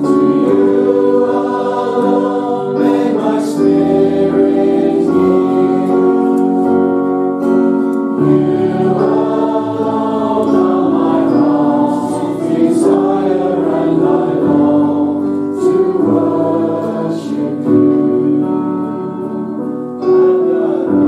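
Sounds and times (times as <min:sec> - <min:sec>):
congregation singing: 0:00.0 - 0:21.0.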